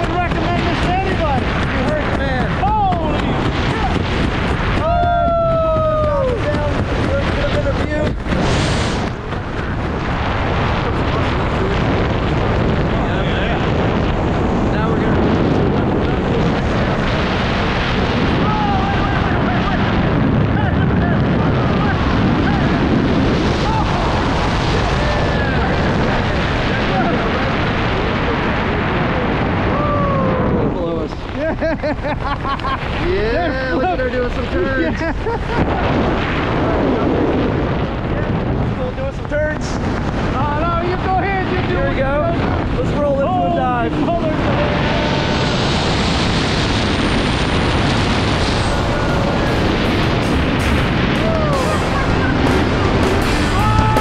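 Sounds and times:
wind rushing over microphone: 0.0s - 54.0s
person whooping: 4.8s - 6.7s, 23.6s - 24.3s, 29.7s - 30.6s, 51.2s - 52.3s, 53.4s - 54.0s.

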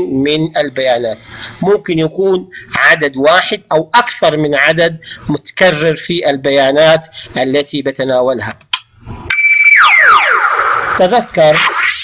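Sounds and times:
electronic sliding tone effect: 9.3s - 12.0s.

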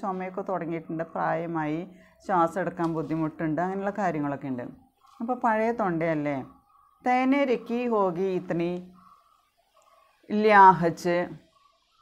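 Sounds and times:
woman speaking: 0.0s - 9.0s, 10.3s - 11.4s
faint background noise: 0.0s - 12.0s.

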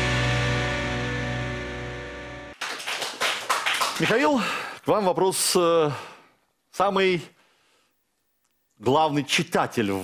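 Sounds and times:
sharp claps: 2.5s - 4.3s.

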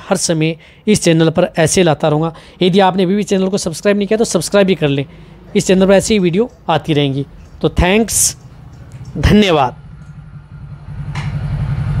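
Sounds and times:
pulsing mechanical rumble: 8.4s - 12.0s.

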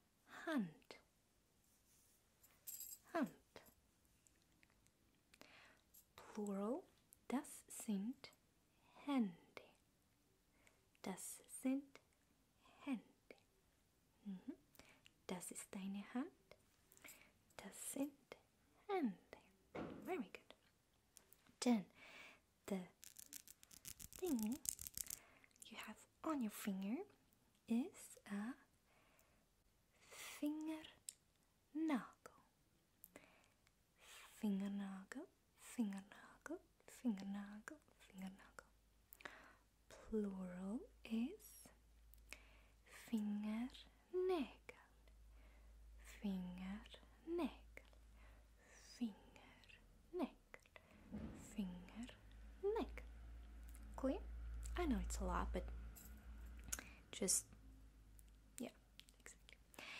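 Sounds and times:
woman whispering softly: 6.2s - 9.8s, 17.5s - 20.7s, 22.7s - 28.7s, 30.1s - 31.1s, 34.2s - 38.8s, 42.9s - 45.1s, 46.0s - 48.0s, 48.6s - 50.8s, 51.4s - 53.1s, 58.6s - 59.9s
person whispering: 22.7s - 26.1s, 58.6s - 59.9s
fingernails clicking and scratching: 23.0s - 25.2s.

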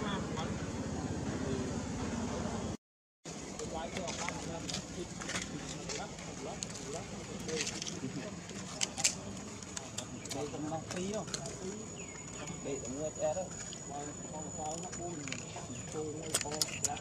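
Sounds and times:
voices chattering: 0.0s - 2.8s, 3.4s - 17.0s
dry leaves crackling: 3.3s - 12.6s.

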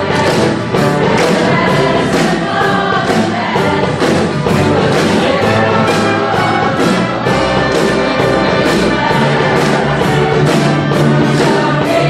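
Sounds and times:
choir singing with band and orchestra: 0.0s - 12.0s.

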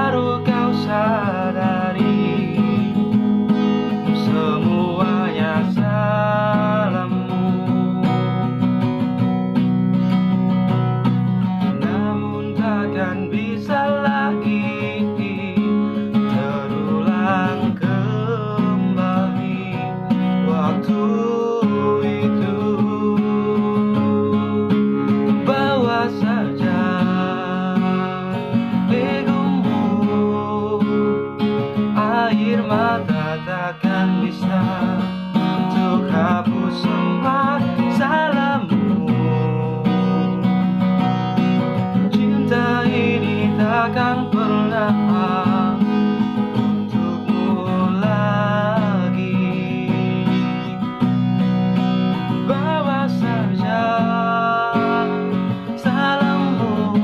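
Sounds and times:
man singing: 0.0s - 8.7s, 10.7s - 57.0s
acoustic guitar strumming chords: 0.0s - 57.0s.

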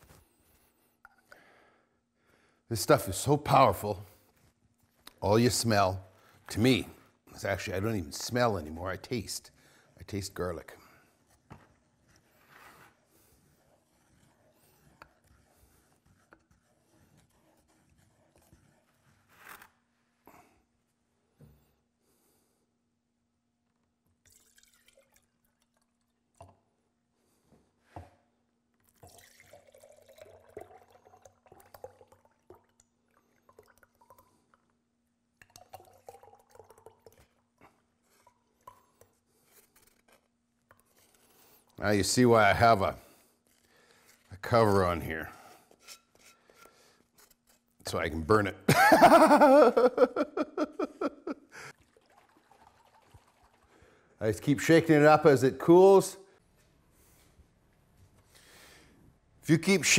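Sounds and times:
thick liquid pouring and dripping: 2.8s - 19.3s, 23.7s - 27.0s, 28.7s - 44.8s, 51.6s - 54.7s
stick scraping in a pot: 11.1s - 19.9s, 39.3s - 48.2s.

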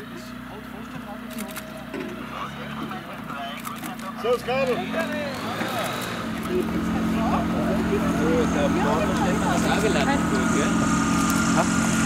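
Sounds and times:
people talking: 0.0s - 12.0s
aircraft engine running: 3.0s - 12.0s.

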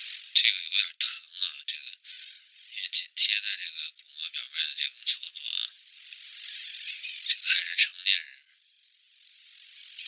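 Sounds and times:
thin high hiss: 0.0s - 0.4s.

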